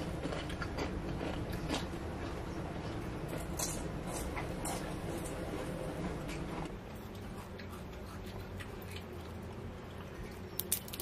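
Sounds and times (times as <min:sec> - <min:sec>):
low steady hum: 0:00.0 - 0:11.0
crisp sweet crackling when broken: 0:10.5 - 0:11.0.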